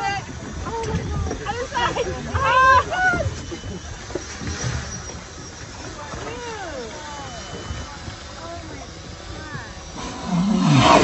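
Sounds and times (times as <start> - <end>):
whale blowing: 9.9 - 11.0.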